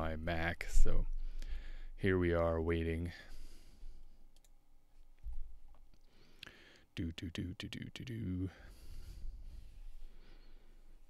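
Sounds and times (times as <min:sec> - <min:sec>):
faint clicks: 0:04.3 - 0:04.6.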